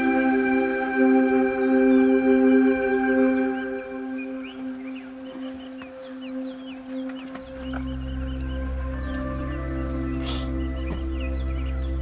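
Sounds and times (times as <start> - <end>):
ambient music with sustained tones: 0.0 - 12.0
deep bass layer: 7.6 - 12.0.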